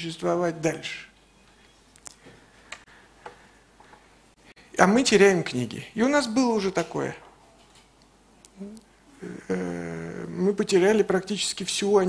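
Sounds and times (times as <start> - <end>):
soft clicks: 1.4 - 4.0.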